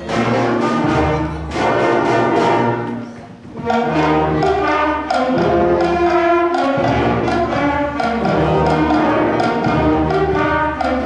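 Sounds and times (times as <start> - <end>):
brass instruments: 0.0 - 11.0
concert band playing held chords: 0.0 - 11.0.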